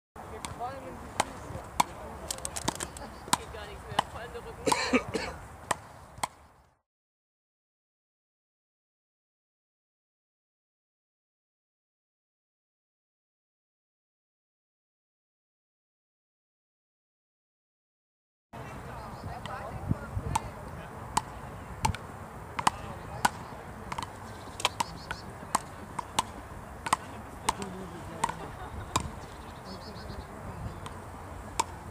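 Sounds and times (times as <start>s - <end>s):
wooden paddles hitting ball: 0.4s - 4.2s, 5.7s - 6.4s, 21.1s - 22.0s, 22.6s - 29.4s, 30.8s - 31.9s.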